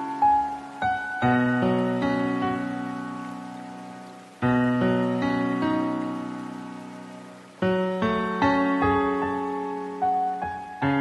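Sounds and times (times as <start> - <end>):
soft solo piano chords: 0.0 - 11.0.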